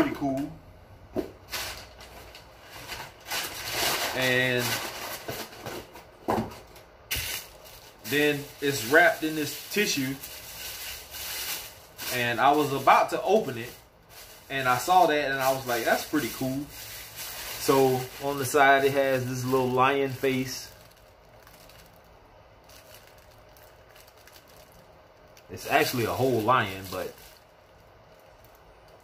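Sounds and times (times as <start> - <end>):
low room hum: 0.0 - 29.0
tissue paper rustling: 1.5 - 5.6, 6.7 - 22.0, 25.6 - 28.6.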